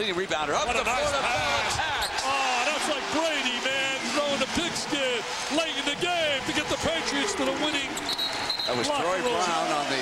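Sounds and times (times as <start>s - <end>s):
arena crowd noise: 0.0s - 10.0s
man commentating: 1.1s - 8.0s.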